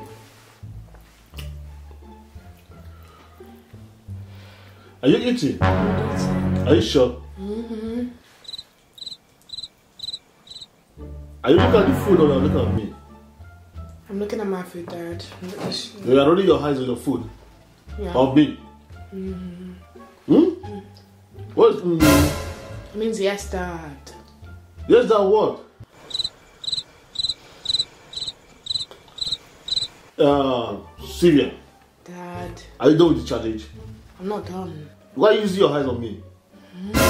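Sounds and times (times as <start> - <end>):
cricket chirping: 8.4 - 10.8, 26.0 - 30.1.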